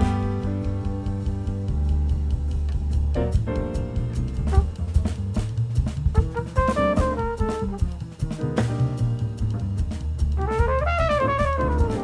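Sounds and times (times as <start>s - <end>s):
drum kit and bass: 0.0s - 12.0s.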